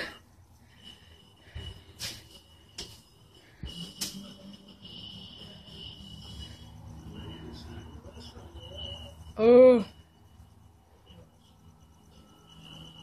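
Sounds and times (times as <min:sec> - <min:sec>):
crickets trilling: 0:00.0 - 0:13.0
low hum: 0:00.0 - 0:13.0.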